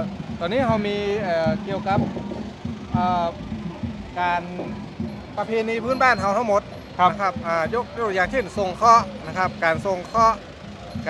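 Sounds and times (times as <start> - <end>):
man speaking: 0.0 - 2.3, 2.9 - 3.4, 4.2 - 4.8, 5.4 - 10.4
low street hum: 0.0 - 11.0.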